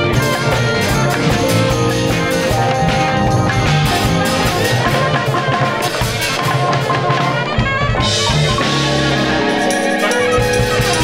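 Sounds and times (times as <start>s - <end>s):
drum kit and cymbals: 0.0s - 11.0s
saxophone long notes: 0.0s - 11.0s
walking upright bass: 0.0s - 11.0s.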